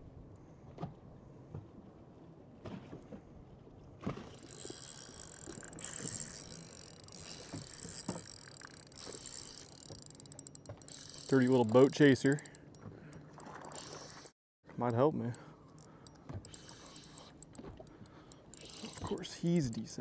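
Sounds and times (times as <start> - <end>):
fishing reel cranking: 4.3 - 20.0.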